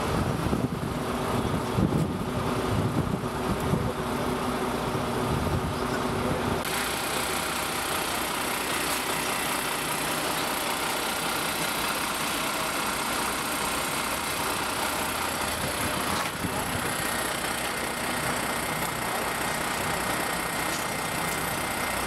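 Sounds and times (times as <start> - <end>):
vehicle engine idling: 0.0 - 22.0
crowd talking: 5.6 - 6.7, 7.4 - 22.0.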